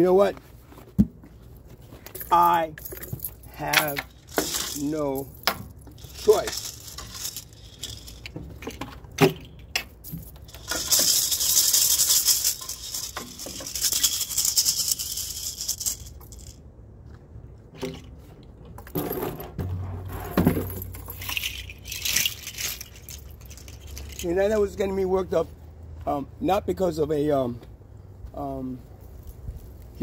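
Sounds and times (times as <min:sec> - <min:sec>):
rustles: 0:00.0 - 0:17.2, 0:17.8 - 0:26.2, 0:27.4 - 0:30.0
bright rattling jangle: 0:02.0 - 0:16.6, 0:20.2 - 0:24.8.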